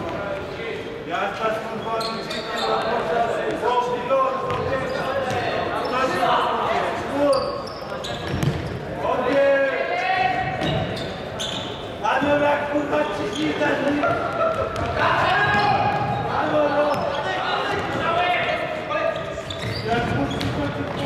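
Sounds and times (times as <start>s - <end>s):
players calling out: 4.4s - 21.0s.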